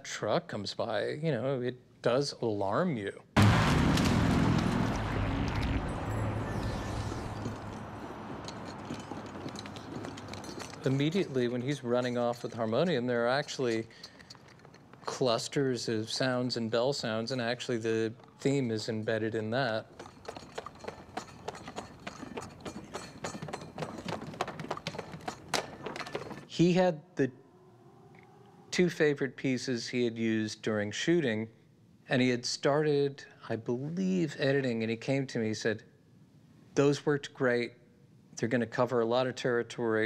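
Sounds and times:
truck speeding past: 3.4 - 11.0
footsteps running on pavement: 7.4 - 11.5, 19.9 - 26.5.

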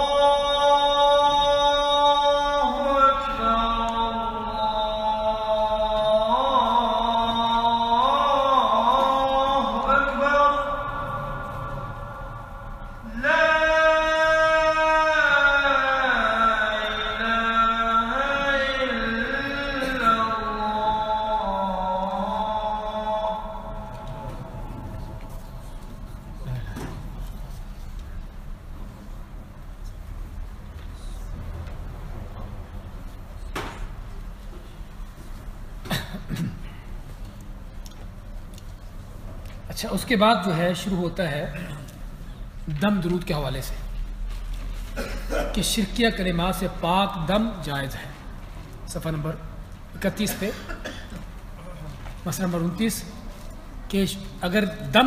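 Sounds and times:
man chanting: 0.0 - 27.0, 39.7 - 44.0, 45.4 - 50.6, 51.6 - 55.0
low background hum: 0.0 - 55.0.

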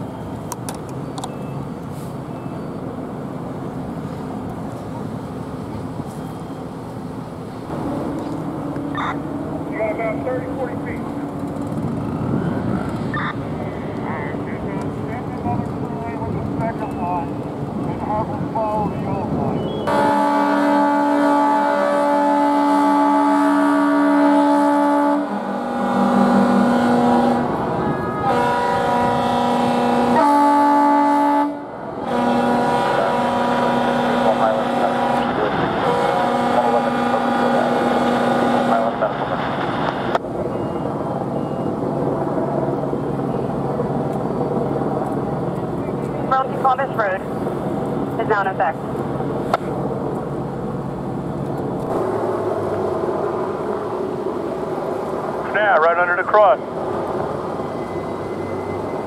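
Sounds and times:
fire truck air horn blasts: 19.9 - 39.0.

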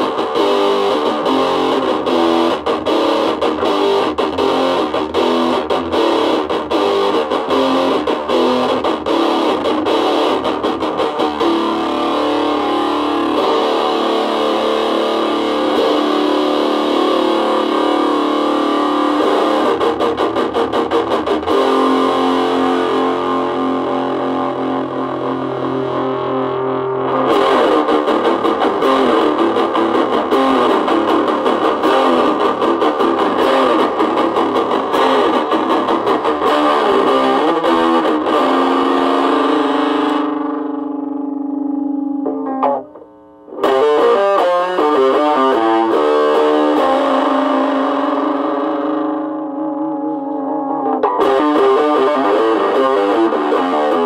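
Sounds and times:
distorted electric guitar: 0.0 - 54.0.

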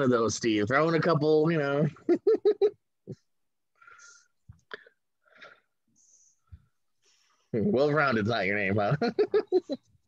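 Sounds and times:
man laughing: 1.9 - 3.2, 8.8 - 9.9.

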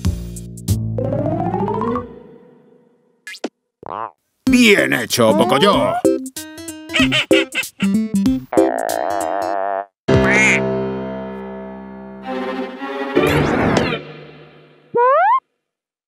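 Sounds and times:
staccato cartoon music: 4.5 - 9.2, 10.1 - 10.7
cartoon duck quack: 6.9 - 8.0, 10.1 - 10.6.

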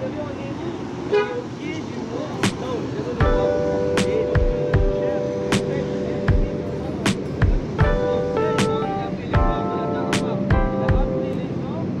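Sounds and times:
street traffic noise: 0.0 - 12.0
car horn toot: 1.1 - 1.4
background voices: 1.6 - 12.0.

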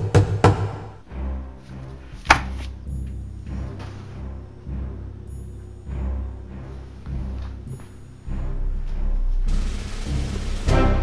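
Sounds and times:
dramatic background score: 0.0 - 11.0.

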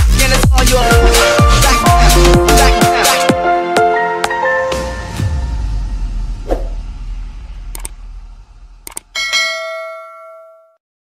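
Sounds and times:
notification bell ding: 9.2 - 10.8.

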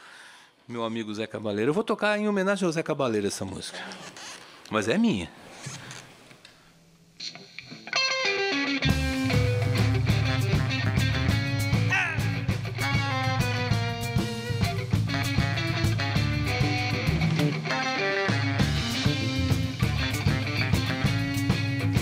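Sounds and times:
electric guitar notes: 7.2 - 22.0
band playing: 7.9 - 22.0
bass line: 8.8 - 22.0.

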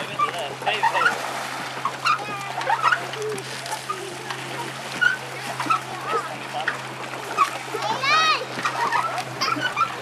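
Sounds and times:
voices calling out: 0.0 - 10.0
water splashing: 0.0 - 10.0.

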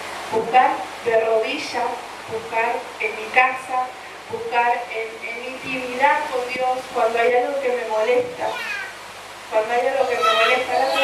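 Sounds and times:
woman speaking over a pa system: 0.3 - 8.7, 9.5 - 11.0.

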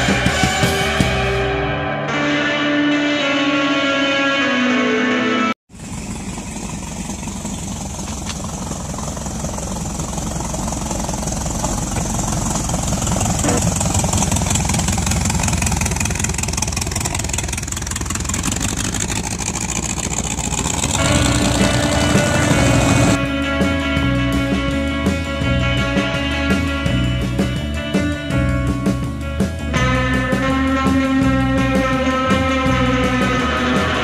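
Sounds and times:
music: 0.0 - 5.6, 21.0 - 34.0
car engine running: 5.7 - 23.3.

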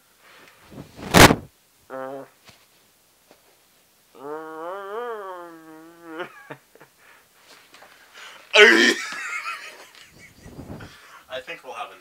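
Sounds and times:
person's loud vocal outburst: 8.6 - 9.0.

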